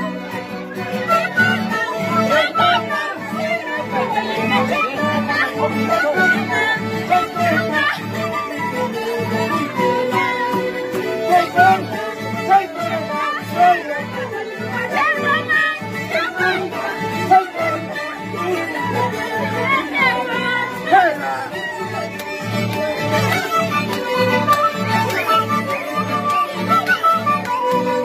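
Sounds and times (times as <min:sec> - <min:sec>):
strummed guitar and mandolin: 0:00.0 - 0:28.0
violin melody: 0:00.0 - 0:28.0.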